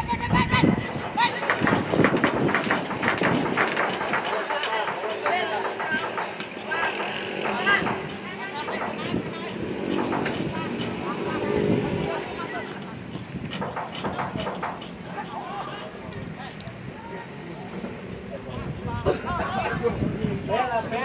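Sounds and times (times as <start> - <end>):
sharp knocks: 0.6 - 12.0, 13.1 - 15.1.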